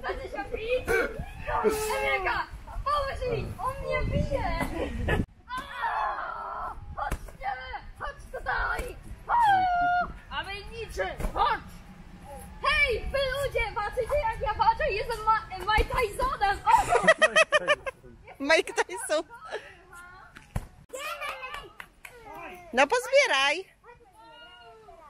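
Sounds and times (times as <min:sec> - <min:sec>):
children shouting and squealing: 0:00.0 - 0:04.5, 0:05.4 - 0:07.8, 0:08.4 - 0:10.2, 0:23.8 - 0:25.0.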